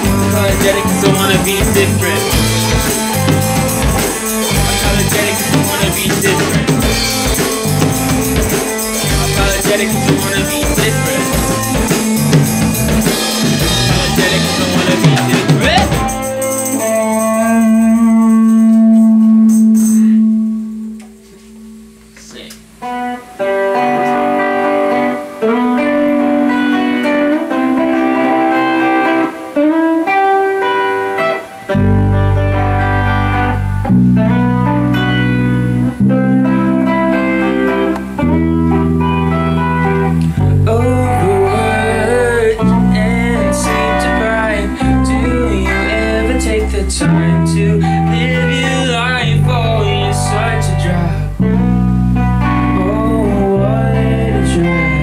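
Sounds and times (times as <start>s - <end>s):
deep bass notes: 0.0s - 16.4s, 31.8s - 55.0s
electric guitar riff: 0.0s - 55.0s.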